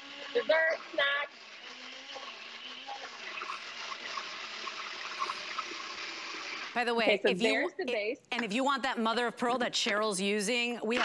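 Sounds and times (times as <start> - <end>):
blender running: 0.0 - 6.8.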